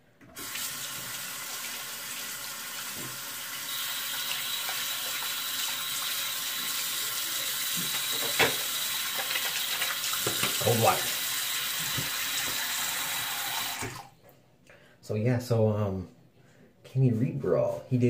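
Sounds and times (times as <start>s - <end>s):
sink tap running: 0.3s - 14.1s.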